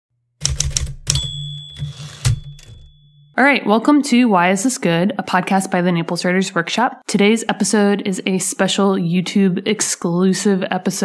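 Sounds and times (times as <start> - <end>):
typewriter keys clacking: 0.4 - 2.9
typewriter bell ding: 0.4 - 3.4.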